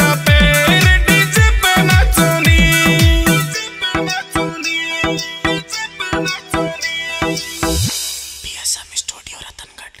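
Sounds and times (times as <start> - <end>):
song music: 0.0 - 9.0
person whispering: 8.4 - 10.0.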